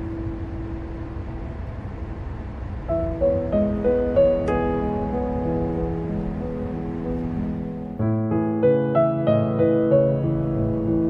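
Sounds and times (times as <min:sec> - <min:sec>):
car driving on road: 0:00.0 - 0:08.0, 0:08.6 - 0:11.0
music notes: 0:02.9 - 0:11.0.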